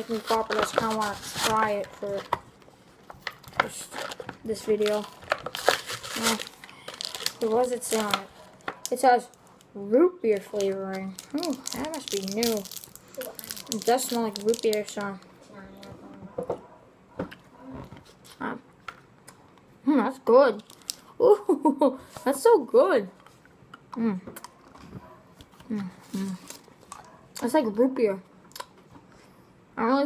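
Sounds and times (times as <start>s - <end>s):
mouth clicks and lip smacks: 28.4s - 28.8s.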